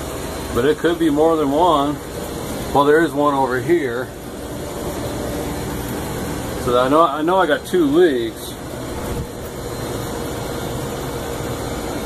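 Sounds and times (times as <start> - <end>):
air-conditioning equipment drone: 0.0 - 12.0.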